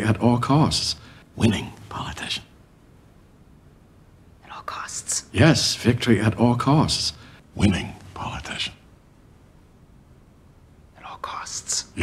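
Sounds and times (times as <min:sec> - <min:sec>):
woman whispering: 0:01.5 - 0:02.5, 0:04.4 - 0:05.4, 0:07.6 - 0:08.8, 0:11.0 - 0:12.0.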